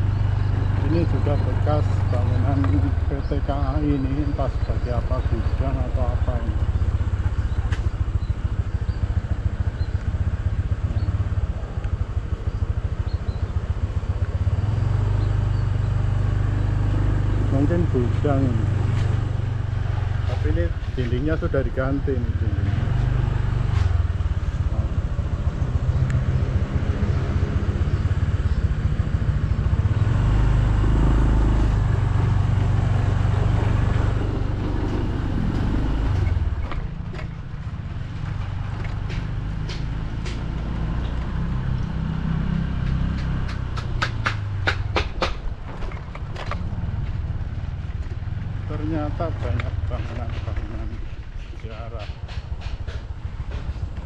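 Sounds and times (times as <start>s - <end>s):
motorcycle engine running: 0.0s - 54.0s.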